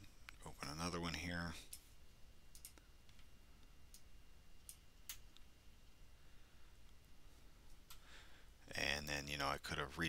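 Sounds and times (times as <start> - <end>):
computer mouse clicks: 2.5 - 3.3, 3.9 - 5.5.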